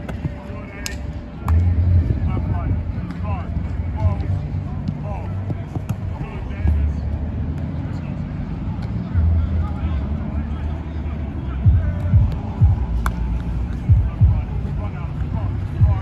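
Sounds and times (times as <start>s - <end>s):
wind buffeting microphone: 1.6s - 3.8s.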